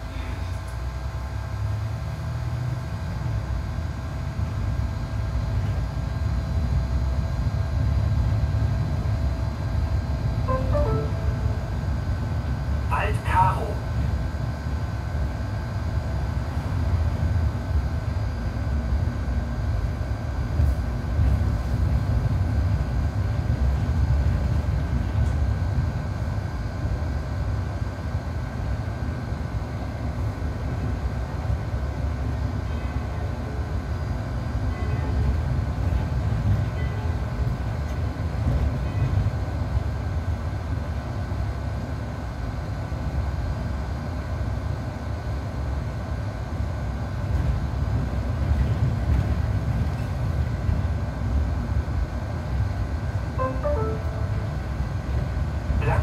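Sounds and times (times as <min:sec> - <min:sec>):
bus cabin low rumble: 0:00.0 - 0:56.0.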